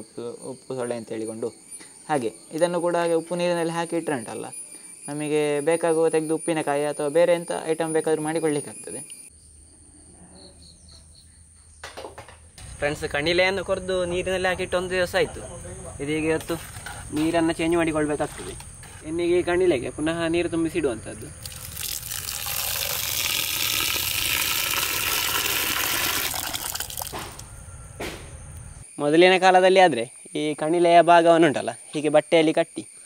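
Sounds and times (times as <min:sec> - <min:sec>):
faint insect chirping: 0:00.0 - 0:33.0
water pouring into a pot: 0:21.4 - 0:27.3.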